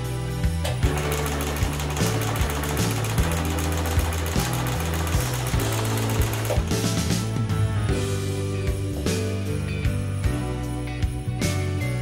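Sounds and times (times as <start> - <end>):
background music: 0.0 - 12.0
sewing machine stitching: 0.8 - 7.0.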